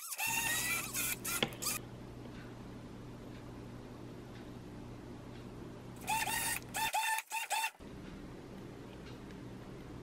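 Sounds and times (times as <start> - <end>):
blender motor whining: 0.0 - 1.8.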